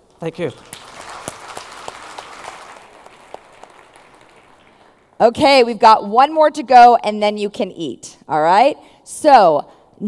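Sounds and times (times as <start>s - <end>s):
audience applauding: 0.2s - 5.2s.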